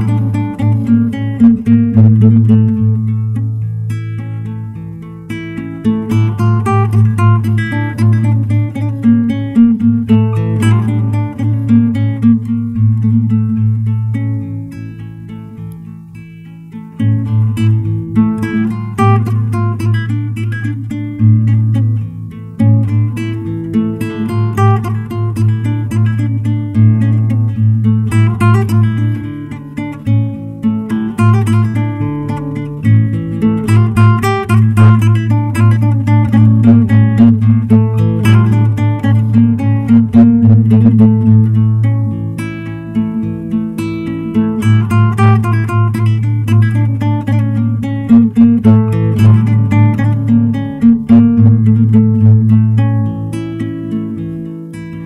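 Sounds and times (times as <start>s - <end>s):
fingerstyle classical guitar: 0.0s - 55.0s.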